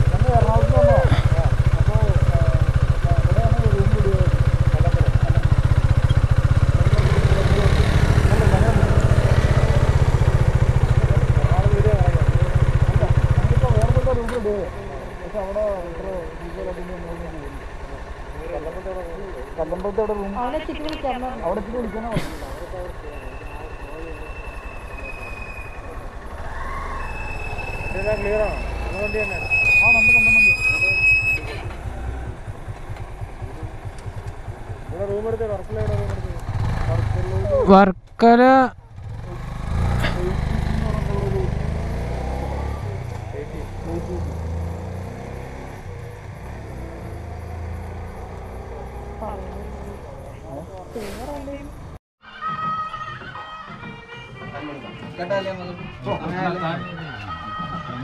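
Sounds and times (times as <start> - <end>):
motorcycle engine idling: 0.0 - 52.0.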